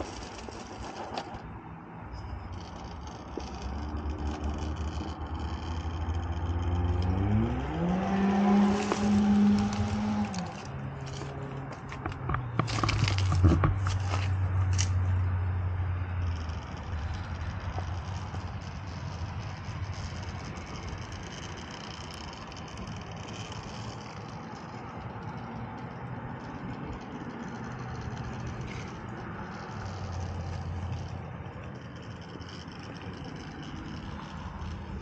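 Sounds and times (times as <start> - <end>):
toy car motor whirring: 0.0 - 35.0.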